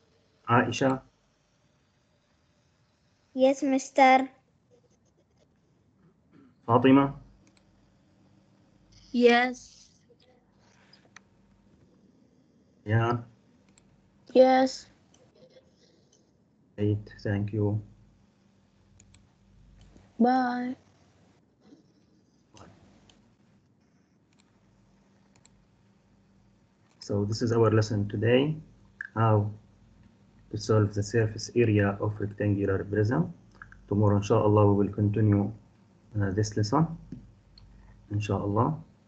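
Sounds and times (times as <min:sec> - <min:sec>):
faint low hum: 0:00.0 - 0:39.0
computer mouse clicks: 0:07.4 - 0:07.7, 0:13.6 - 0:13.9, 0:19.0 - 0:20.1, 0:22.6 - 0:23.2, 0:24.3 - 0:24.5, 0:25.2 - 0:25.6
computer clicks: 0:19.0 - 0:20.0, 0:25.3 - 0:25.6.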